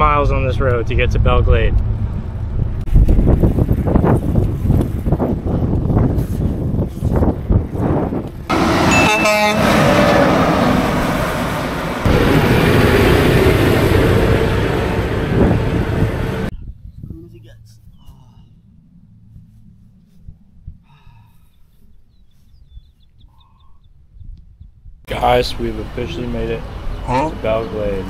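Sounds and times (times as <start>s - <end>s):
road noise: 0.0s - 16.6s, 17.2s - 22.4s, 25.1s - 28.0s
wind: 0.0s - 28.0s
heavy trucks passing: 7.9s - 16.5s, 25.1s - 28.0s
truck horn blast: 8.5s - 16.5s.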